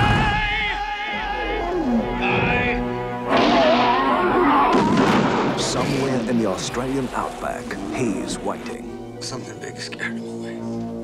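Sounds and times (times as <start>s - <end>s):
wild boar squealing: 3.4s - 4.9s.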